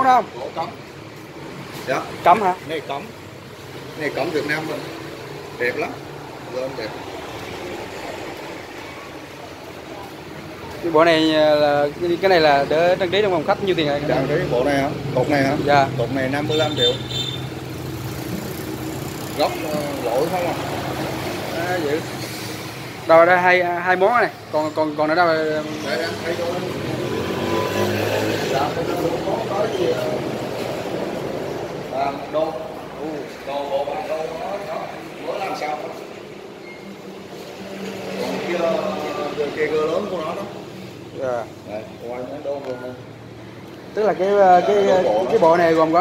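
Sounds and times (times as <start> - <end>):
people talking: 5.6 - 7.0, 8.9 - 17.2, 19.3 - 22.2, 23.1 - 27.0, 27.8 - 30.6, 31.9 - 36.1, 38.1 - 40.6, 41.2 - 43.0, 44.0 - 46.0
vehicle engine hum: 17.1 - 23.1.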